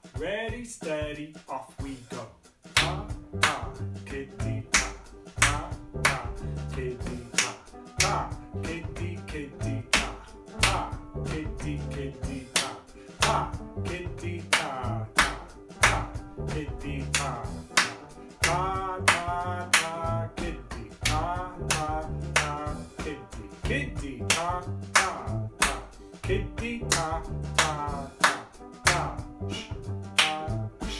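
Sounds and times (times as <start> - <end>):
music backing track: 0.0 - 30.9
person singing along: 0.1 - 30.9
hand claps and body percussion: 2.6 - 30.9.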